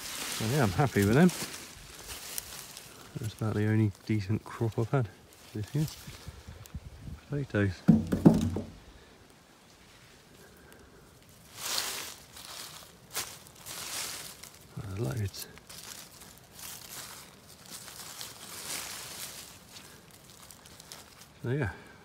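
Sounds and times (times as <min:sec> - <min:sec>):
hands rustling dry leaf mulch: 0:00.0 - 0:06.7, 0:10.4 - 0:21.8.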